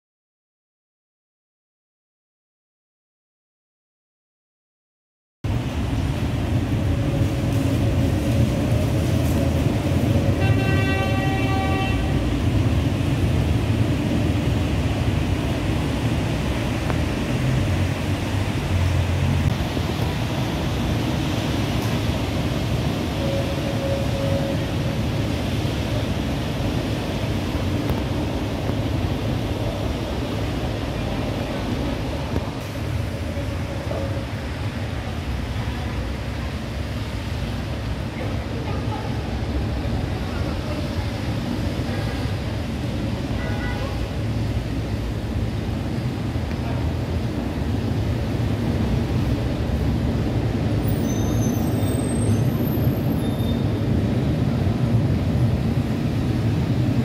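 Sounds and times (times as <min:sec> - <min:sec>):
tram running: 0:05.4 - 0:57.0
vehicle horn: 0:10.4 - 0:12.3, 0:43.3 - 0:44.1.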